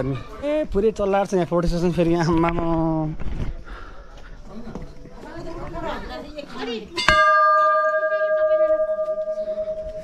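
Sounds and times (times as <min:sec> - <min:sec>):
brass bell ringing: 0:07.0 - 0:10.0.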